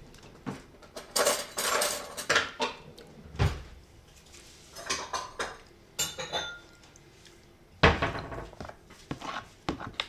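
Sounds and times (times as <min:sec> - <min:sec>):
metal spoon scraping plastic tub: 0:09.1 - 0:10.0.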